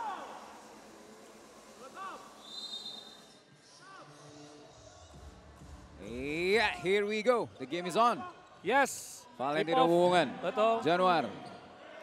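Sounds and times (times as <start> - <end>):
basketball arena ambience: 0.0 - 12.0
high whistle tone: 2.4 - 3.4.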